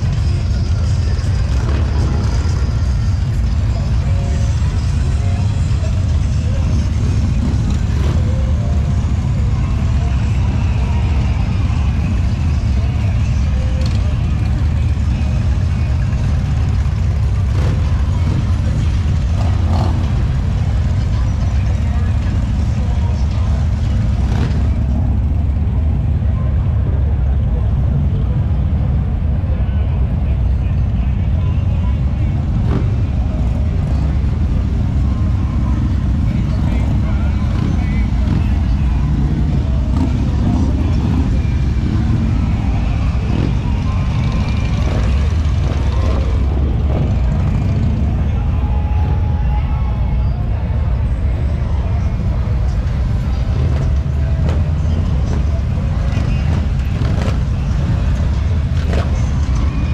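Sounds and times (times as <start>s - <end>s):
indistinct voices: 0.0s - 59.9s
motorcycle engines rumbling: 0.0s - 59.9s.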